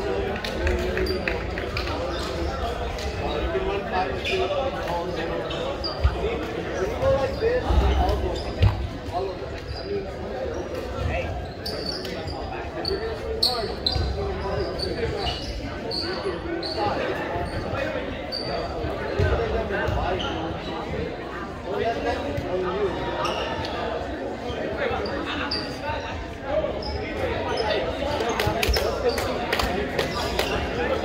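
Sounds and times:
players chattering: 0.0 - 31.0
shoe squeaks: 4.0 - 6.2, 6.8 - 20.9, 23.2 - 23.8, 24.5 - 26.1.

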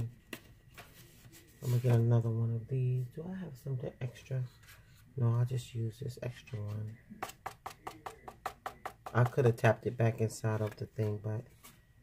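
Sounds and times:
card tapping on surface: 7.2 - 9.4.

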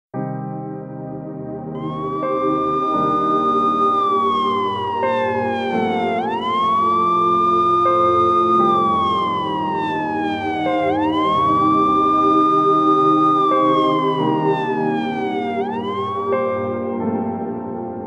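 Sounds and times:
low music drone: 1.8 - 17.0
siren wailing: 1.8 - 17.0.

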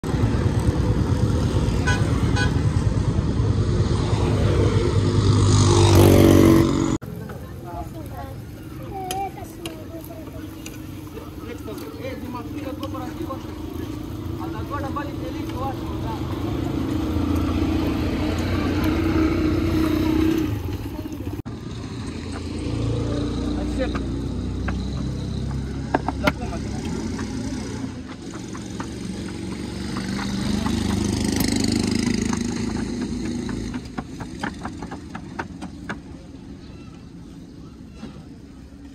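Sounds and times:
road traffic passing: 0.0 - 38.9
voices: 6.2 - 38.9.

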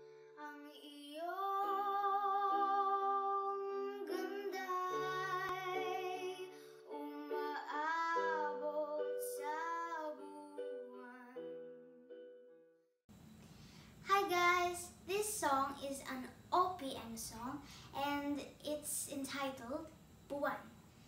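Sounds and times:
girl singing wordless melody: 0.0 - 12.1, 14.0 - 20.7.

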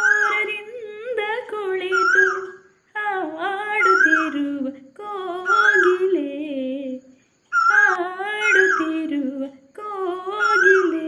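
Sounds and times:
woman singing wordless melody: 0.0 - 11.0.

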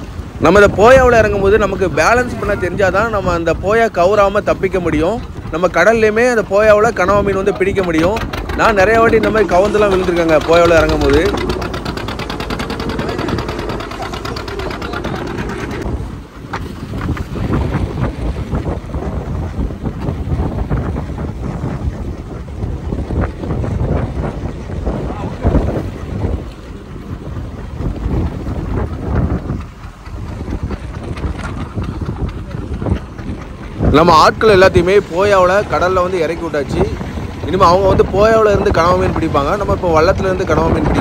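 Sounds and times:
boat motor running: 0.0 - 41.0
water rushing along boat: 0.0 - 41.0
wind buffeting microphone: 0.0 - 41.0.

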